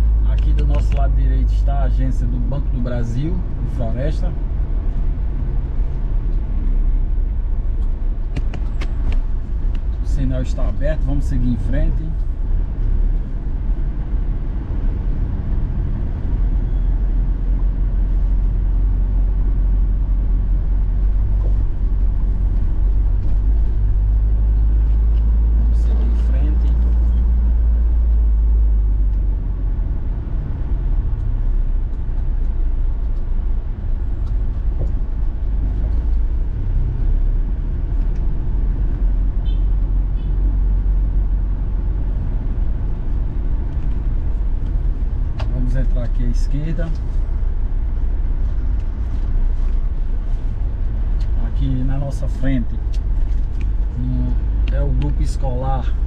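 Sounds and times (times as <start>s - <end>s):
engine and road noise rumble: 0.0s - 56.0s.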